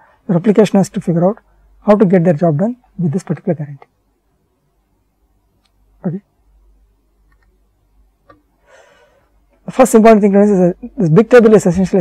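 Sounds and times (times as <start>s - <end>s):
man speaking: 0.3s - 3.9s, 6.0s - 6.3s, 9.6s - 12.0s.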